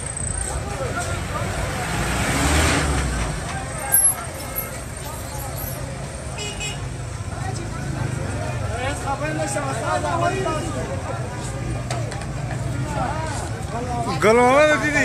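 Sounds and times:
faint crowd voices: 0.0s - 15.0s
traffic noise: 0.0s - 15.0s
vehicle passing: 1.0s - 3.8s.

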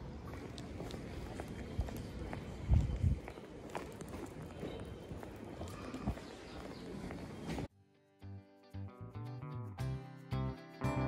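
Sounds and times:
footsteps on stone paving: 0.0s - 7.7s
street background: 0.0s - 11.0s.

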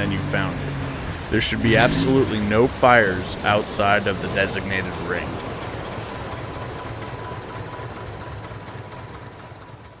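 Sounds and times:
propeller plane engine running: 0.0s - 10.0s.

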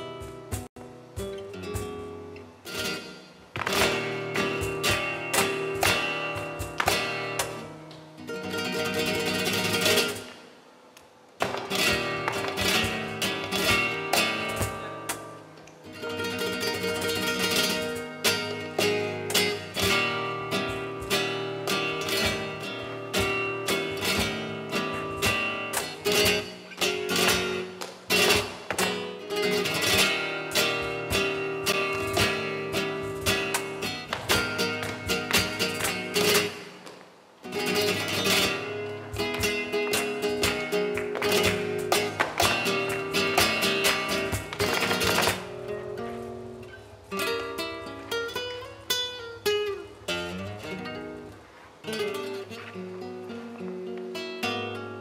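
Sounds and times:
flamenco guitar playing: 0.0s - 55.0s.

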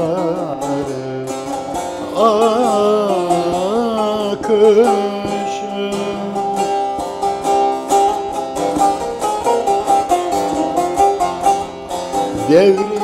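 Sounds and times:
plucked long-necked lute solo: 0.0s - 13.0s.

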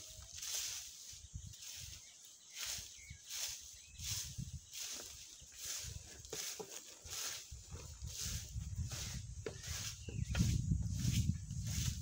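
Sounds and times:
footsteps crunching dry leaves: 0.0s - 12.0s.

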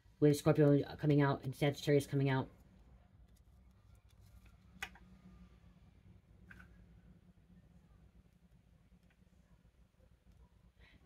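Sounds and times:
faint low hum: 2.1s - 11.0s.

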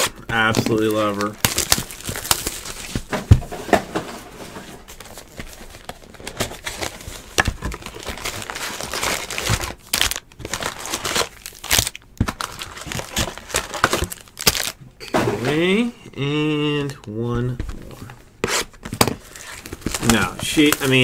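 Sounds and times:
foil packs crinkling: 0.0s - 3.6s, 4.8s - 14.8s, 18.8s - 21.0s.

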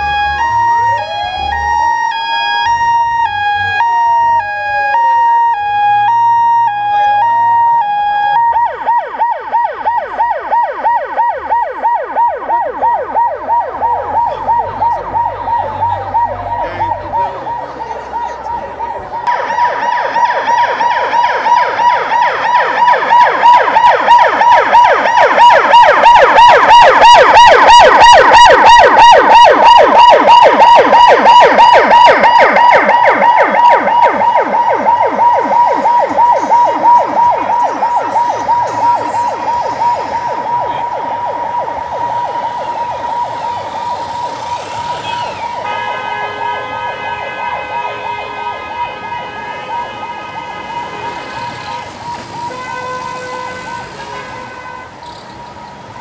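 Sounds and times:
vehicle siren warbling: 0.0s - 46.2s, 46.8s - 54.3s.

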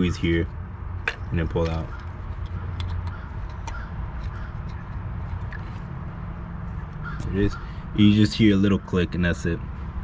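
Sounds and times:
plastic connector clicking: 1.0s - 5.6s.

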